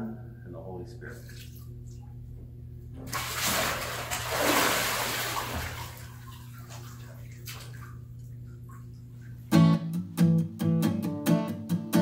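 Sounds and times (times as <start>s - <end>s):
water dripping: 3.1s - 9.5s
water splashing in a pool: 3.1s - 9.5s.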